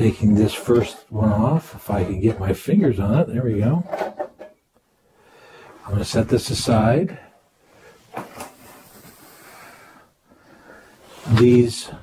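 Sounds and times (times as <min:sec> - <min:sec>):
faint hiss: 0:05.0 - 0:12.0.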